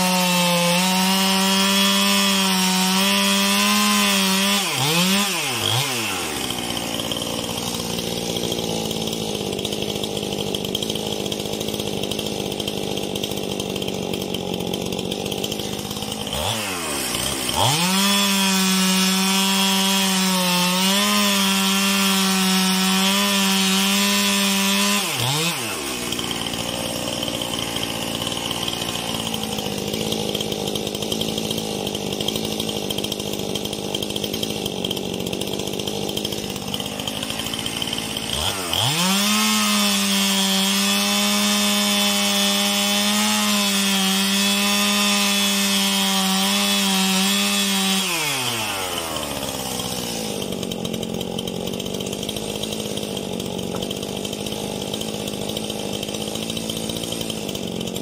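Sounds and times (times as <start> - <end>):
chainsaw cutting a log: 0.0 - 58.0.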